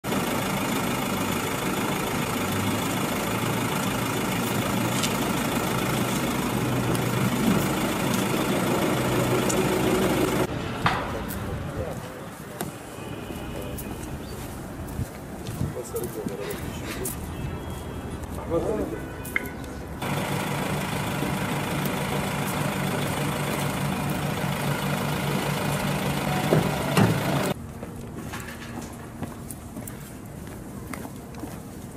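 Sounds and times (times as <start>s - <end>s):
vehicle engine idling: 0.0s - 10.5s, 19.9s - 27.6s.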